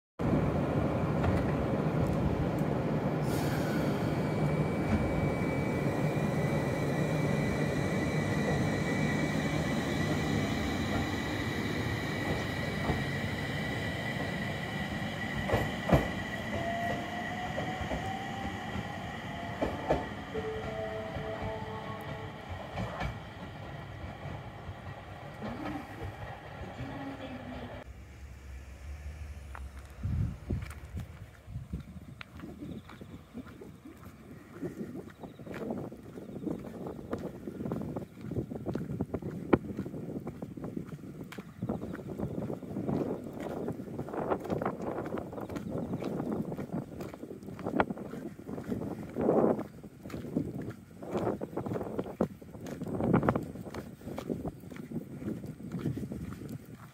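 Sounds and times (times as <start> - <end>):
electric train pulling away: 0.2 - 35.8
wheels clicking on rails: 1.0 - 27.9
high squeal from train wheels: 3.2 - 26.7.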